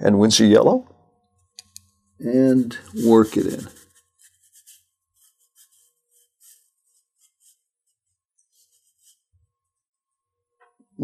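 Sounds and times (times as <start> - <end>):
paintbrush swishing on paper: 2.3 - 9.3.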